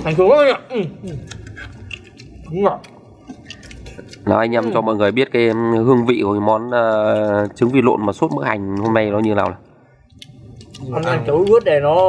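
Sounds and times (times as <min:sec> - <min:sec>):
chewing and spoon clicks: 0:01.2 - 0:11.7.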